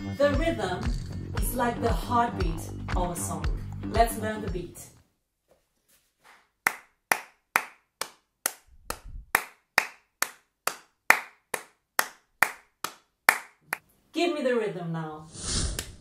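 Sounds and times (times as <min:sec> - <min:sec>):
hand claps keeping a beat: 0:06.3 - 0:13.8.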